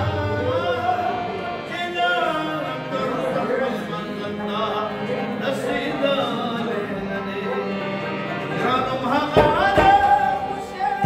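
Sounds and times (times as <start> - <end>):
harmonium playing: 0.0 - 11.0
man singing: 0.0 - 11.0
rabab playing: 0.0 - 11.0.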